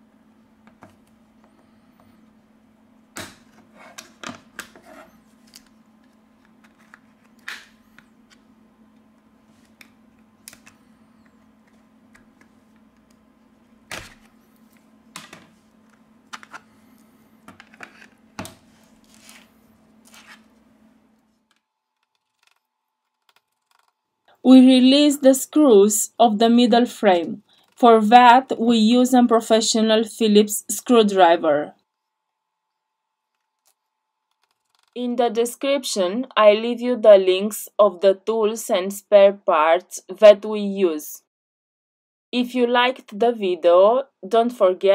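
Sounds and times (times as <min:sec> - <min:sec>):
faint steady hum: 0:00.0 - 0:41.2.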